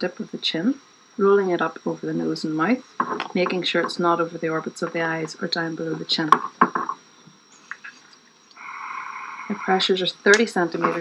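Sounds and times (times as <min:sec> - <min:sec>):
gas hissing from mask: 0:08.5 - 0:11.0.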